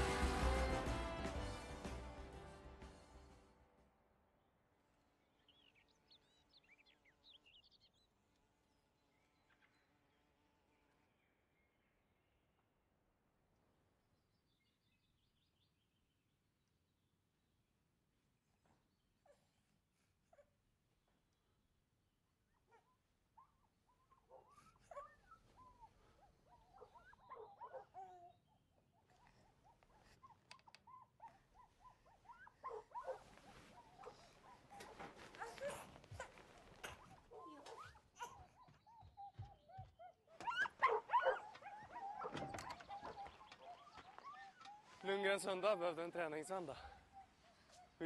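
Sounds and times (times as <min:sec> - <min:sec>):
bedding rustling: 0:32.6 - 0:37.4.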